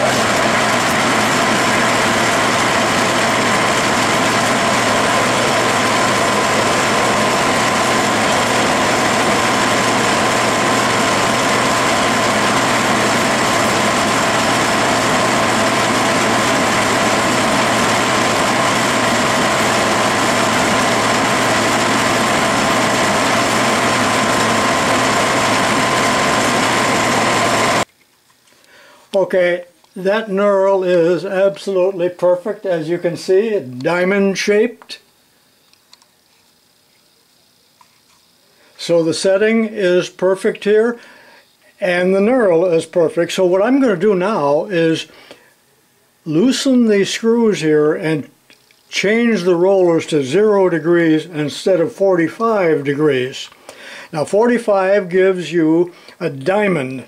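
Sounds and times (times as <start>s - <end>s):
metal lathe running: 0.0s - 27.9s.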